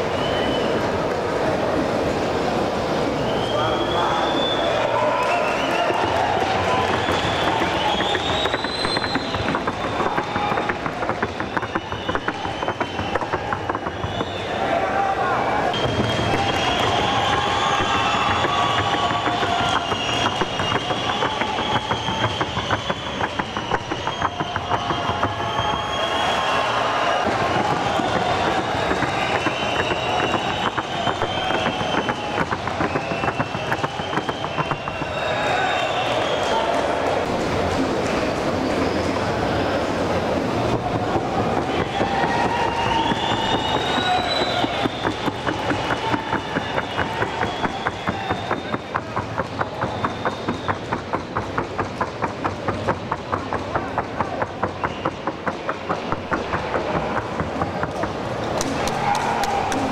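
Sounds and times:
voices: 0.0s - 51.4s
horse hooves trotting: 5.8s - 15.1s, 15.9s - 36.1s.

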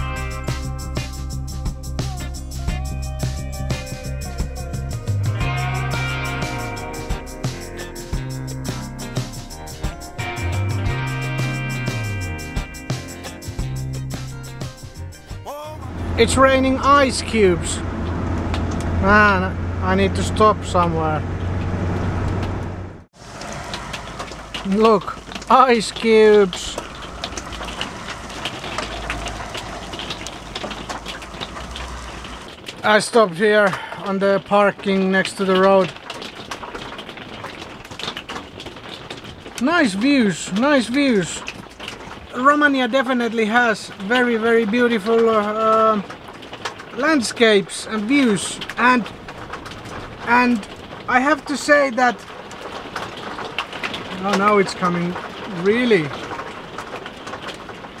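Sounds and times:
heavy rain on a vehicle roof: 2.1s - 7.6s, 11.3s - 12.7s, 14.9s - 58.0s
hail tapping: 5.3s - 20.8s, 23.1s - 58.0s
low rumble: 13.7s - 32.6s
steady hiss: 23.2s - 32.5s.

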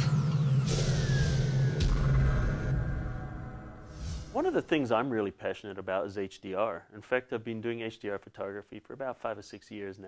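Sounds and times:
high gliding whistle tone: 0.0s - 4.4s
whooshing hits: 0.0s - 4.7s.

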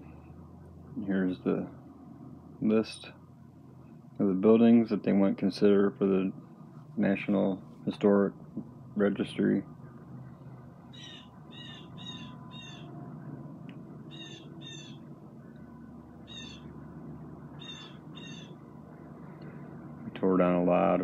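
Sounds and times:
low steady hum: 0.0s - 21.0s
bird harsh calls: 10.9s - 12.9s, 14.1s - 15.1s, 16.2s - 16.7s, 17.6s - 18.6s.

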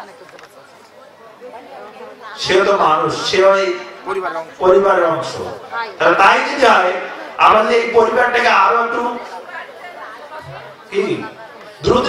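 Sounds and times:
man speaking into a microphone: 2.4s - 9.3s, 10.9s - 12.0s
background voices murmuring: 8.8s - 12.0s.

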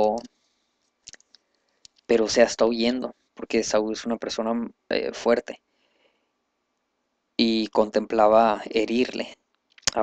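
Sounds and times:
person speaking: 0.0s - 0.3s, 1.9s - 5.6s, 7.4s - 10.0s.

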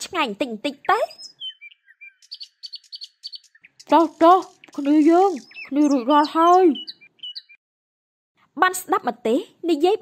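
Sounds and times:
bird chirping: 0.0s - 7.6s
person speaking: 3.9s - 6.9s.

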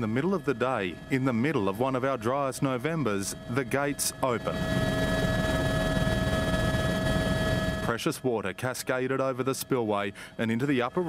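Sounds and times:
helicopter rotor throb: 0.0s - 11.0s
helicopter turbine whine: 0.0s - 11.0s.

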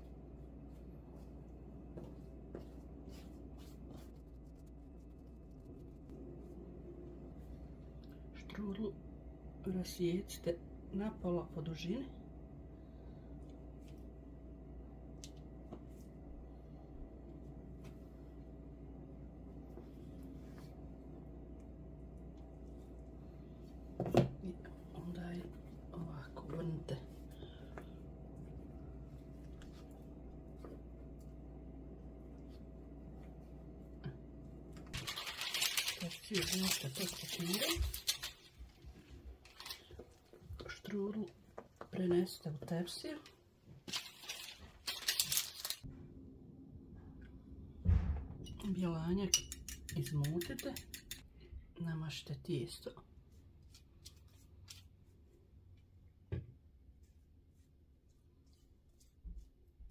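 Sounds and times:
dough being twisted by hand: 0.0s - 6.7s, 24.7s - 40.7s
low room hum: 0.0s - 59.9s.

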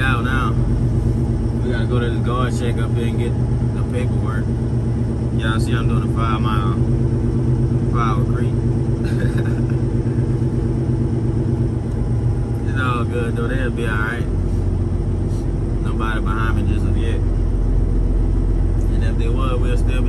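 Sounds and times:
voice: 0.0s - 0.6s, 1.6s - 4.5s, 5.4s - 6.9s, 7.9s - 9.6s, 12.6s - 14.3s, 15.8s - 17.2s, 18.8s - 20.0s
diesel truck engine running: 0.0s - 20.0s.

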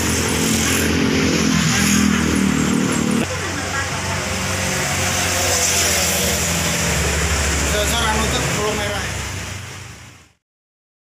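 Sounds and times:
vehicle engines running: 0.0s - 10.2s.

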